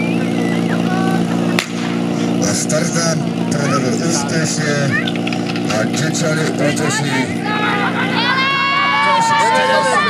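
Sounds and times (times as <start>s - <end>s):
pump engine running: 0.0s - 10.0s
people shouting: 0.2s - 1.6s, 6.8s - 10.0s.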